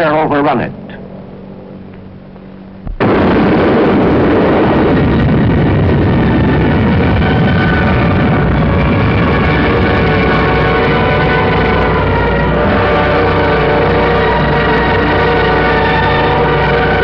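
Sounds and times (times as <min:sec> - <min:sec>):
explosion rumbling roar: 0:02.9 - 0:17.0.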